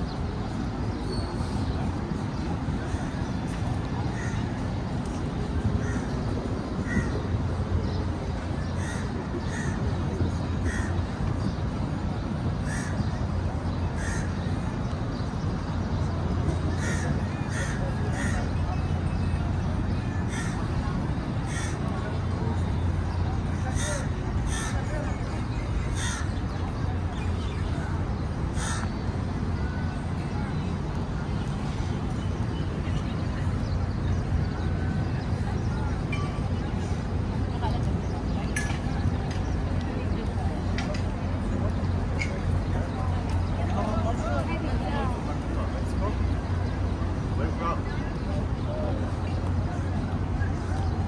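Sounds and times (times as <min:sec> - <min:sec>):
birds calling: 0:00.0 - 0:51.0
harsh bird calls: 0:02.6 - 0:11.7, 0:12.5 - 0:15.4, 0:20.0 - 0:29.2.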